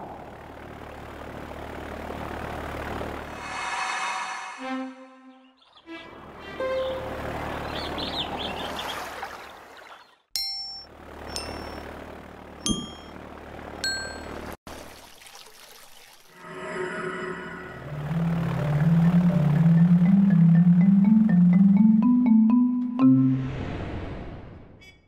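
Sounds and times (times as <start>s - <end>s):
rushing whoosh: 3.3s - 5.0s
sustained musical tones: 3.3s - 8.0s, 16.4s - 23.6s
bright ringing dings: 10.4s - 12.0s, 12.6s - 13.2s, 13.8s - 14.5s.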